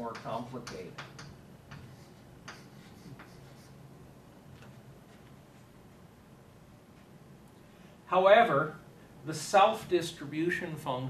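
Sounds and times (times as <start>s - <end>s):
chalk tapping and scratching: 0.0s - 3.8s.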